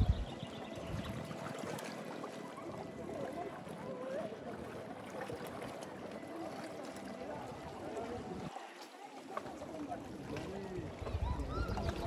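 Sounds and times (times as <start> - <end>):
distant people chatting: 0.0 - 12.0
soft water wash: 0.0 - 12.0.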